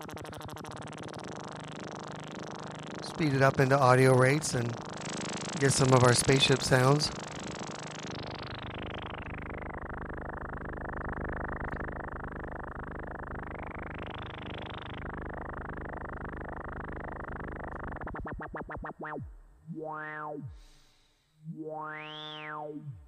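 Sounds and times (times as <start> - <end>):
buzzing modulated synthesizer tone: 0.0 - 23.0.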